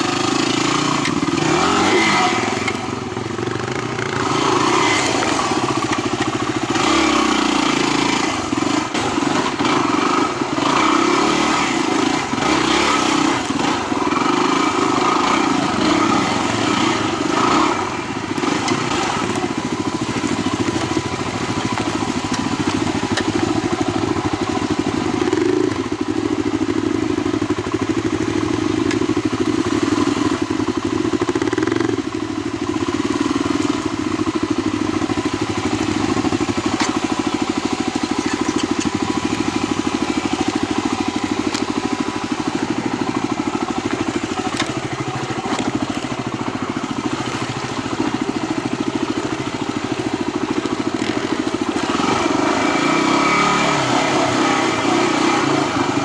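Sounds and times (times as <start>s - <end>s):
motorcycle engine at low revs: 0.0s - 56.0s.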